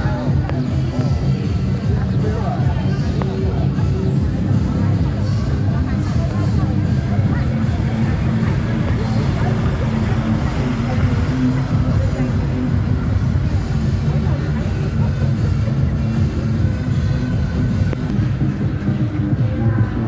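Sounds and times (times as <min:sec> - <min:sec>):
music: 0:00.0 - 0:20.0
voices: 0:00.0 - 0:20.0
diesel truck engine running: 0:04.1 - 0:19.4.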